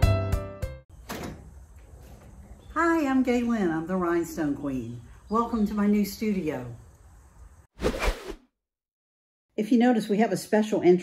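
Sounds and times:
door opening: 1.0 - 2.7.

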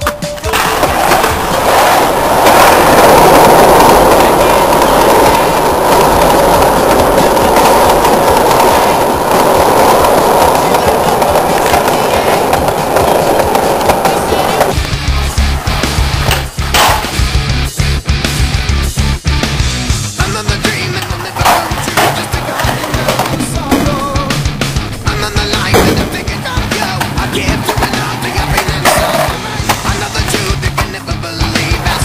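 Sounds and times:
skateboard wheels rolling on concrete: 0.0 - 32.0.

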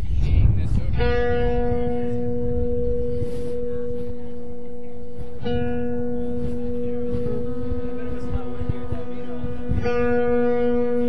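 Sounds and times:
electric guitar single note: 0.0 - 11.0.

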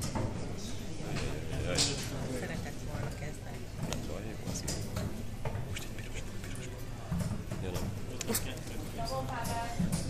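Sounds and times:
people talking in a hall: 0.0 - 10.0.

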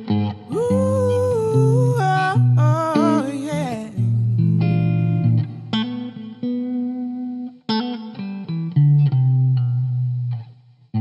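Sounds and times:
woman singing soul: 0.5 - 5.4.

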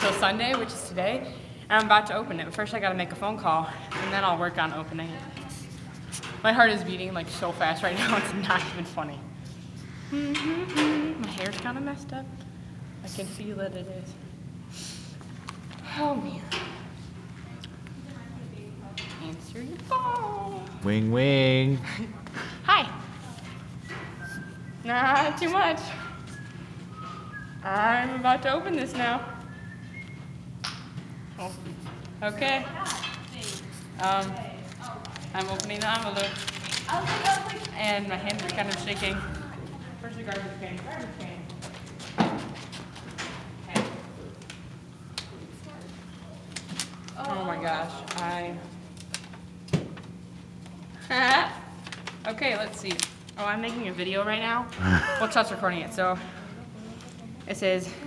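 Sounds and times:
steady low hum: 0.0 - 58.0
woman speaking: 13.0 - 14.1, 22.6 - 23.4, 24.8 - 26.0, 31.4 - 41.4, 52.3 - 56.4, 57.4 - 58.0
paper crackling: 32.8 - 39.0, 51.8 - 53.4.

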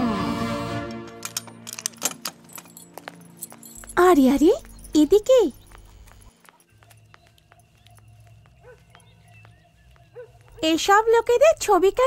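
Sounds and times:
faint background ambience: 1.2 - 12.0.

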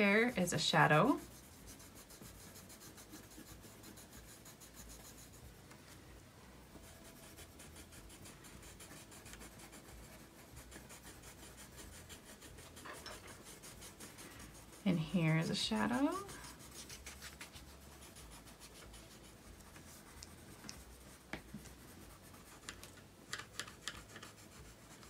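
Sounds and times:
pencils scratching on paper: 0.0 - 5.7, 6.6 - 25.0.

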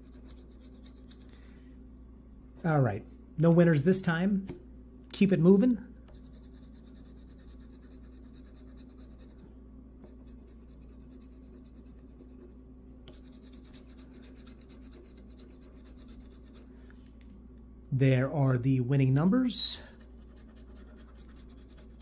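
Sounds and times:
lottery ticket being scratched: 13.1 - 16.7.

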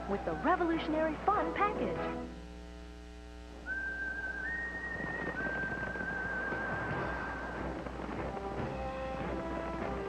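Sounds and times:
whistled tune: 3.6 - 7.8.

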